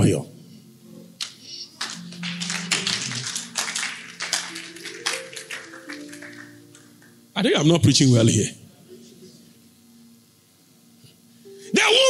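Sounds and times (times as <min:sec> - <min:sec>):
held notes of background music: 0:00.0 - 0:12.0
congregation applauding: 0:01.2 - 0:07.3.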